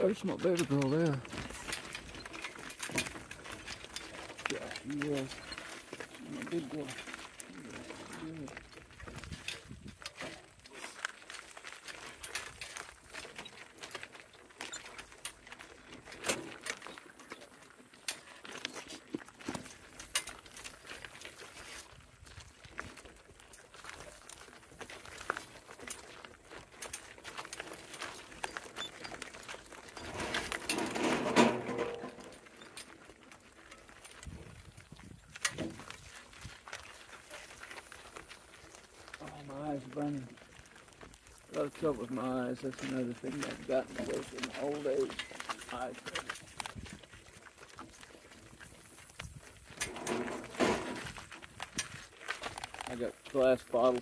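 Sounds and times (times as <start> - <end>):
clicks and rattles of wagon: 0.0 - 54.0
wagon rolling on gravel: 0.0 - 54.0.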